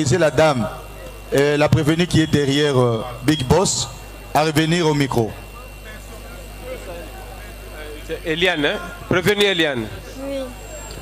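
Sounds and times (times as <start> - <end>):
murmur of voices: 0.0 - 11.0
steady low hum: 0.0 - 11.0.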